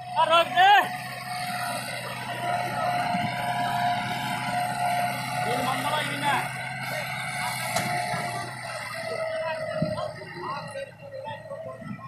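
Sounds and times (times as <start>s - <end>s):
tractor diesel engine under load: 0.0s - 12.0s.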